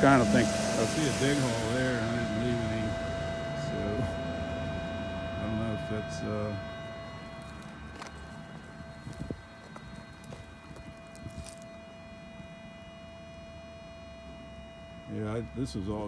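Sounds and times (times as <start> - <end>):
footsteps on dirt and twigs: 7.4 - 11.8.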